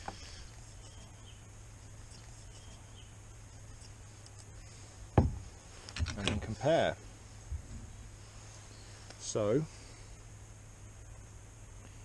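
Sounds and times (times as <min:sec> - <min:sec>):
faint low hum: 0:00.0 - 0:12.0
knock on wooden workbench: 0:05.2 - 0:05.4.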